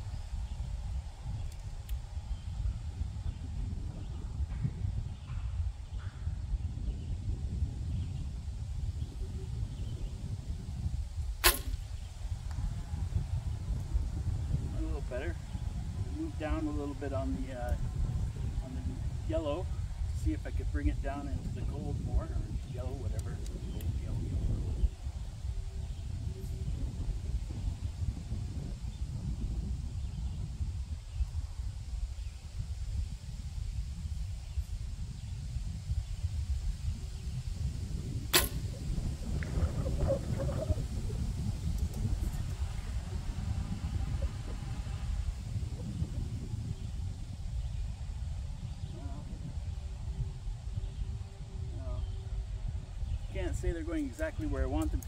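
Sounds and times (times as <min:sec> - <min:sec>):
gusty wind on microphone: 0:00.0 - 0:55.0
bow string snap: 0:11.4 - 0:11.9, 0:38.3 - 0:38.8.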